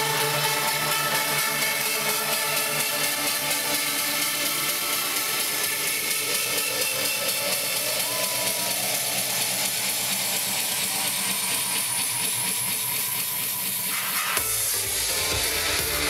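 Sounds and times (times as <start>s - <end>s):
club dance music: 0.0s - 16.0s.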